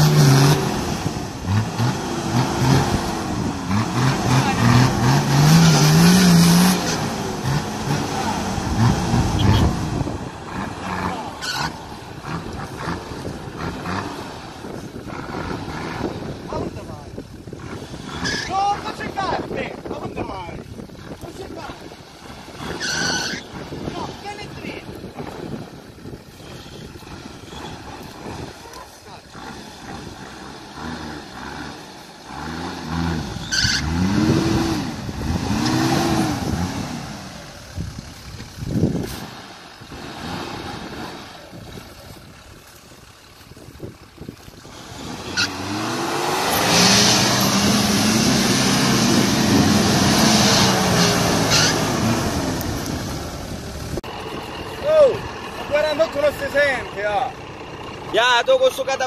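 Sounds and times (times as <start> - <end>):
off-road engine revving: 0.0 - 59.0.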